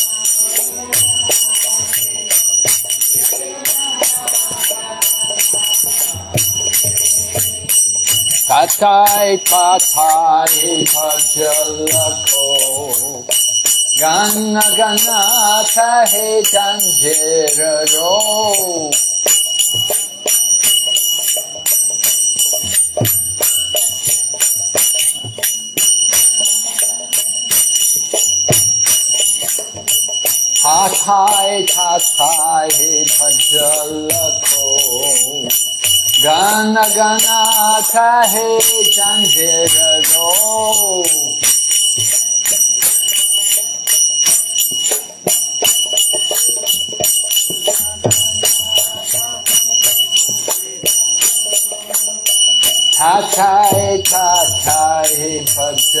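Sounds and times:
hand cymbals clashing: 0.0s - 56.0s.

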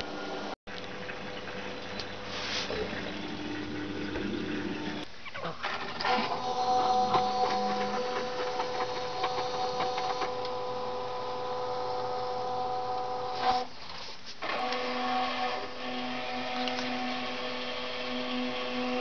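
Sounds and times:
washing machine motor whine: 0.0s - 13.7s, 14.4s - 19.0s.

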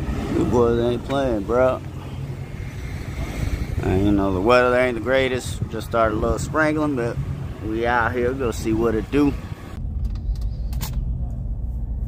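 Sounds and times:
wind buffeting microphone: 0.0s - 10.2s
car engines idling: 0.0s - 12.0s.

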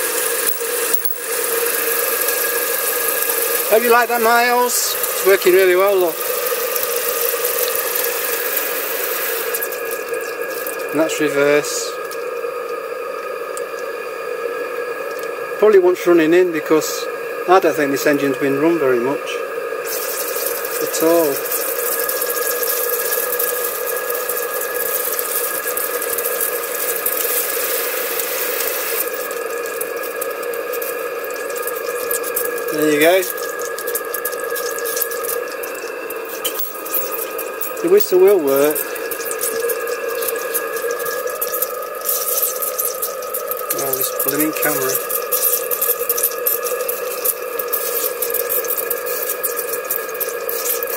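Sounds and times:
steam hissing: 19.8s - 50.9s.

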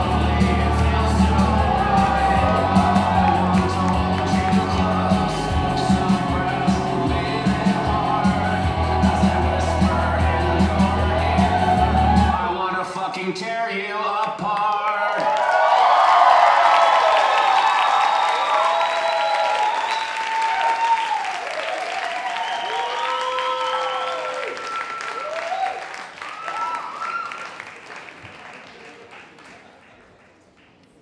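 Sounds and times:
audience applauding: 0.0s - 12.4s, 14.6s - 30.8s
whoops from crowd: 15.1s - 27.6s.

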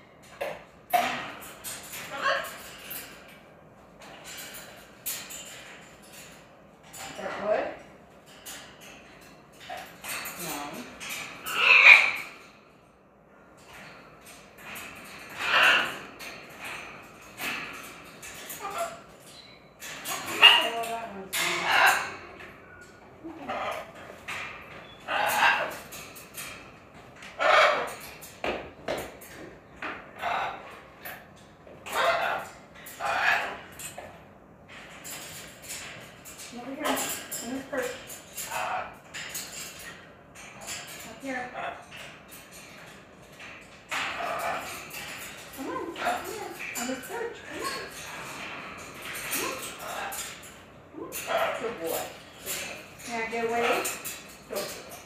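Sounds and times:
parrots squawking and chattering: 0.2s - 12.8s, 13.5s - 55.0s.

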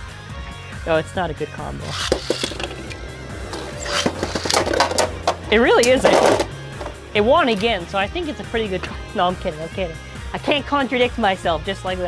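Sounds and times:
background music: 0.0s - 12.0s
spinning tops on plastic floor: 1.9s - 2.8s, 3.8s - 5.4s
spinning tops clacking together: 1.9s - 6.9s.

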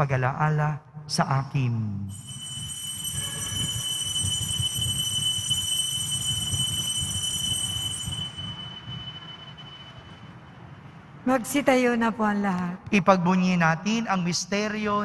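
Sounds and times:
altar bell ringing: 2.1s - 10.8s.

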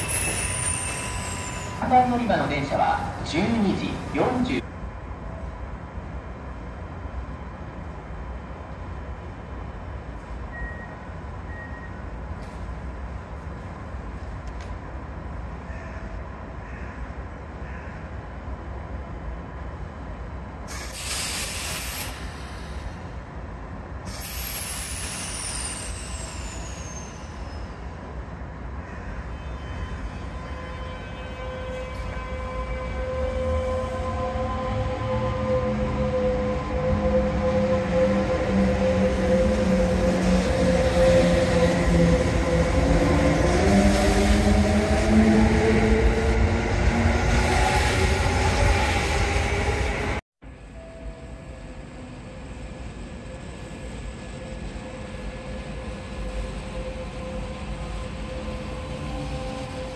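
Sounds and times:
train wheel noise: 0.0s - 4.7s
high falling whistle: 24.3s - 27.8s.

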